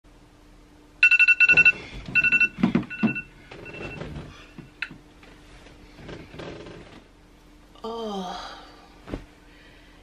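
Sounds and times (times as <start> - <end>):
fast-pulsing alarm beep: 1.0 - 4.0.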